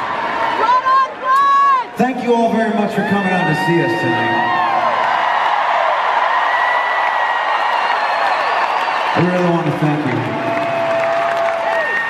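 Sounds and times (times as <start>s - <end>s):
crowd cheering and applauding: 0.0s - 12.0s.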